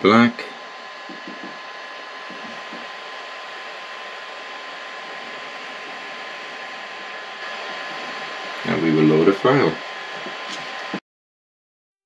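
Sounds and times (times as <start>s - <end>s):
small cooling fan running: 0.0s - 11.0s.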